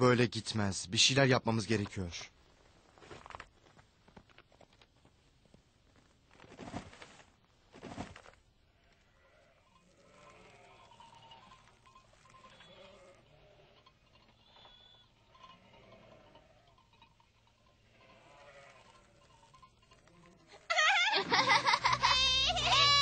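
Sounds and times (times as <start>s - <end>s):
sheep and goats bleating: 8.8s - 20.8s, 21.9s - 23.0s.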